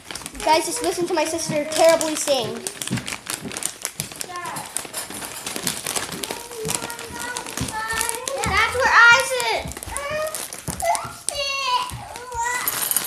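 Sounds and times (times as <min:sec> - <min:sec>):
clicks and rattles: 0:00.0 - 0:11.4
girl singing: 0:00.4 - 0:02.7, 0:06.2 - 0:09.2, 0:09.9 - 0:13.0.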